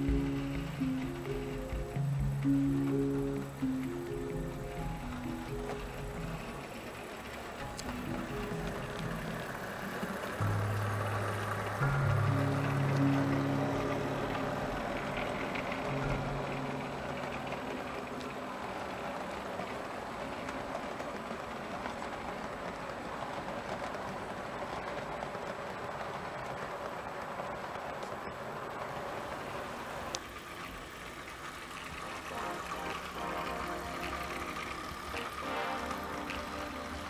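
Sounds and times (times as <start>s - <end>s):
music with slow low notes: 0.0s - 19.4s, 30.4s - 37.0s
model train rolling on track: 0.0s - 37.0s.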